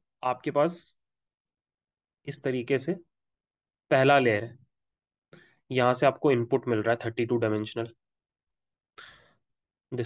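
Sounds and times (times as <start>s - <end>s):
man's short breath: 9.0s - 9.4s.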